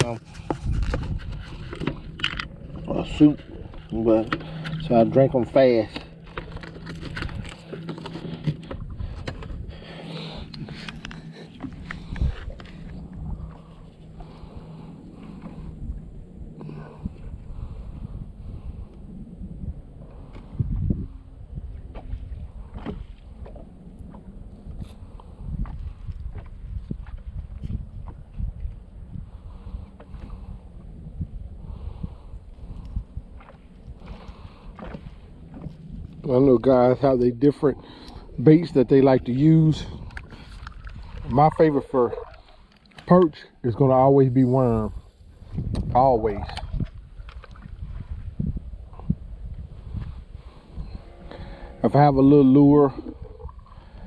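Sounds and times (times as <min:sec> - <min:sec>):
low rumble: 0:00.0 - 0:54.0.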